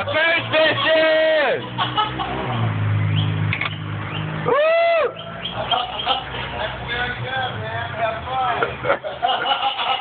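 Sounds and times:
vehicle engine running low: 0:00.0 - 0:10.0.

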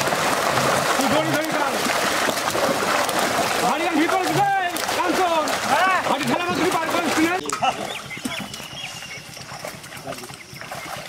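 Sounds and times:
fish splashing in net: 0:00.0 - 0:11.0.

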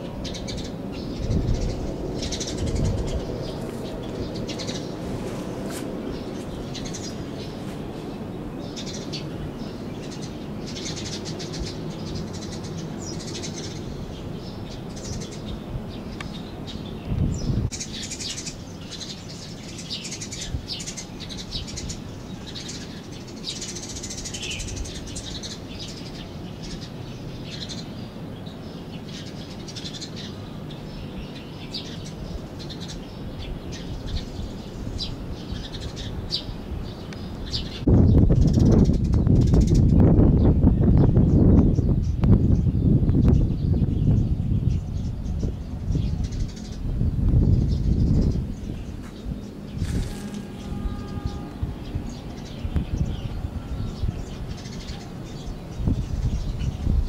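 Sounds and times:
small birds chirping: 0:00.0 - 0:57.0.

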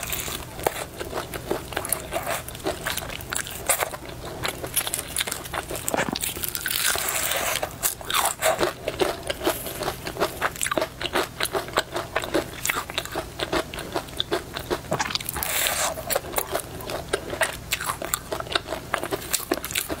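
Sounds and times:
chewing crispy fried chicken: 0:00.0 - 0:20.0.

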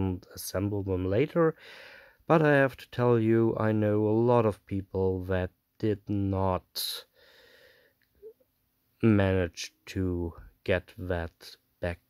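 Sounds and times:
faint breath intake: 0:01.6 - 0:02.2, 0:07.0 - 0:08.1.

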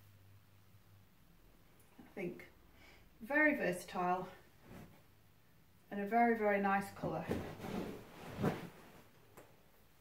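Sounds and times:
person sitting on fabric sofa: 0:03.2 - 0:05.2, 0:05.9 - 0:09.9.

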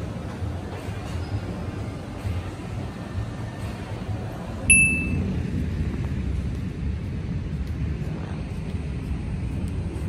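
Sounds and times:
low background rumble: 0:00.2 - 0:10.0
short high-pitched ding: 0:04.7 - 0:05.2.

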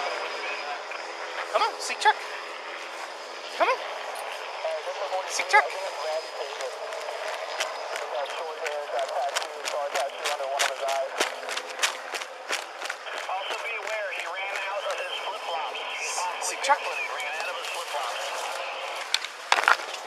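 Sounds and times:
footsteps: 0:05.4 - 0:20.0
brush rustling and crackling: 0:17.6 - 0:20.0
twigs snapping: 0:19.0 - 0:20.0.

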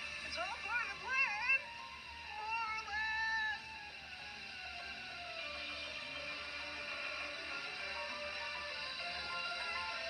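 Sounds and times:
cartoon background music: 0:00.1 - 0:10.0.

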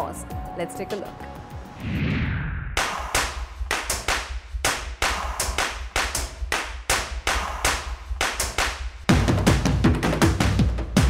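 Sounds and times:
sharp clap-like percussive hits: 0:02.8 - 0:11.0.

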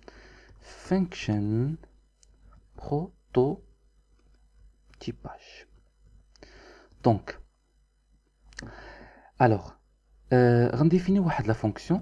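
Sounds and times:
man speaking softly: 0:00.6 - 0:01.8, 0:02.8 - 0:03.6, 0:05.0 - 0:05.7, 0:07.0 - 0:07.4, 0:09.4 - 0:12.0
man whispering: 0:05.0 - 0:05.8.

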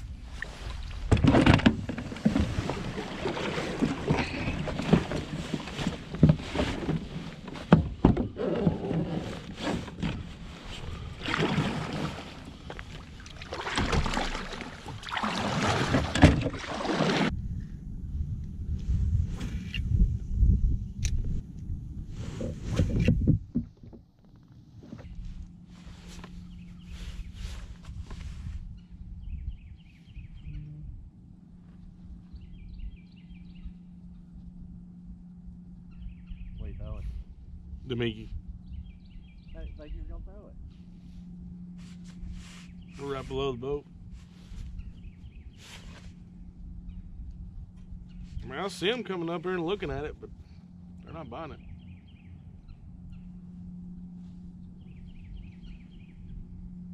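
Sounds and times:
water sloshing around hull: 0:00.0 - 0:17.4, 0:22.0 - 0:39.5, 0:40.6 - 0:56.9
kayak paddle splashing: 0:00.3 - 0:17.3
water lapping: 0:01.9 - 0:07.7, 0:08.4 - 0:17.3.

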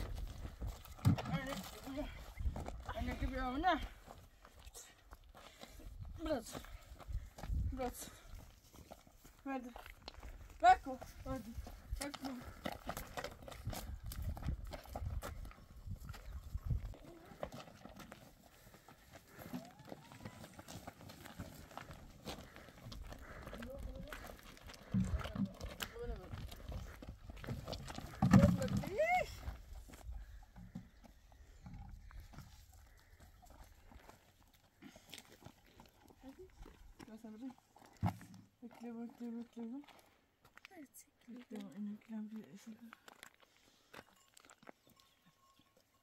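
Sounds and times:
people's voices: 0:23.2 - 0:26.5.

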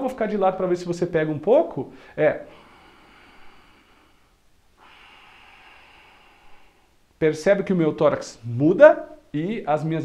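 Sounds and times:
man breathing in through nose: 0:02.0 - 0:07.0.

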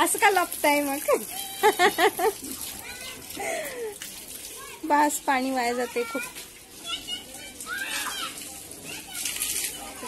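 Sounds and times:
woman laughing: 0:01.3 - 0:02.4.

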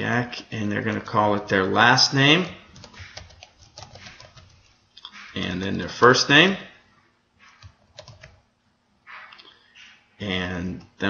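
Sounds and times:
faint keyboard typing: 0:02.7 - 0:05.3, 0:07.4 - 0:08.4.

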